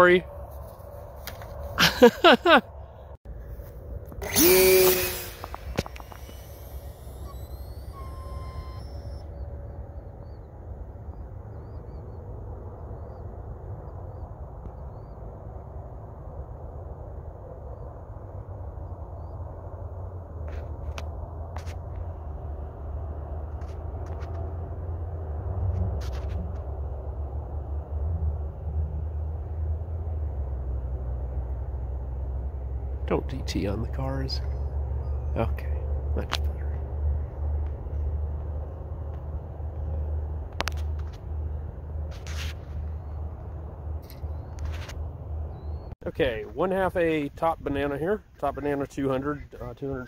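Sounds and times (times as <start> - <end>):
model plane motor whine: 4.0 - 9.3
faint chirps and clicks: 44.0 - 44.9.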